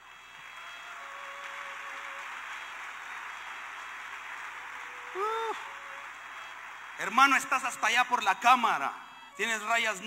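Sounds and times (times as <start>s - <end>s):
congregation applauding: 0.0s - 10.0s.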